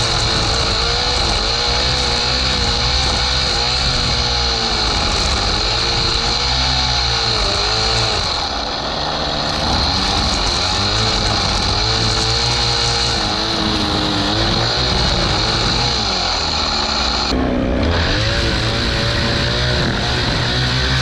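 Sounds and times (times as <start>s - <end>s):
string trimmer engine revving: 0.0s - 21.0s
trimmer line cutting grass: 0.0s - 21.0s.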